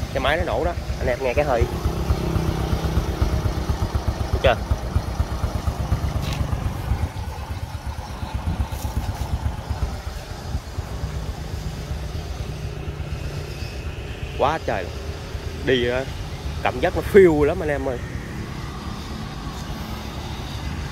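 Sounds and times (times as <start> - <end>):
motorcycle engine idling: 0.0 - 20.9.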